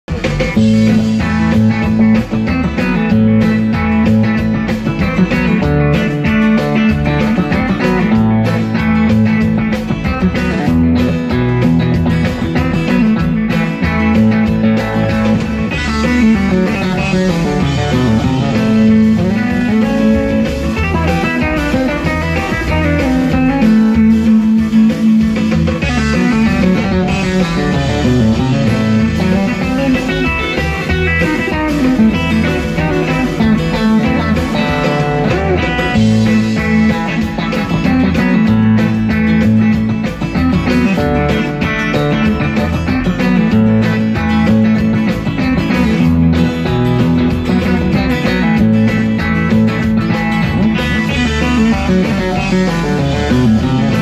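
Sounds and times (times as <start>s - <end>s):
electric guitar playing solo: 0.1s - 54.0s.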